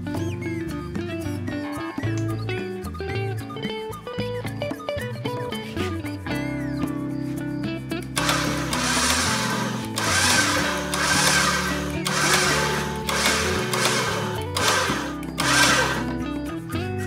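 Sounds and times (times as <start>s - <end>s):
electric winch running: 8.2s - 16.2s.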